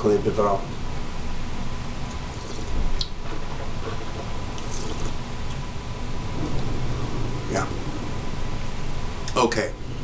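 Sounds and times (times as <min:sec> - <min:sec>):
low room hum: 0:00.0 - 0:10.0
wet mouth sounds: 0:02.3 - 0:03.1, 0:04.6 - 0:05.2.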